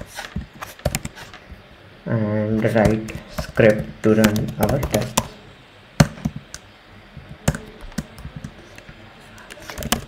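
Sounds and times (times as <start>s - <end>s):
computer keyboard keystrokes: 3.4s - 5.3s, 9.5s - 10.0s.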